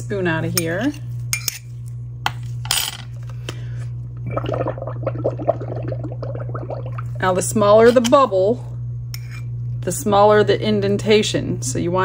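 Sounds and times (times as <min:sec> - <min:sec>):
straw blowing bubbles in water: 0:04.2 - 0:07.2.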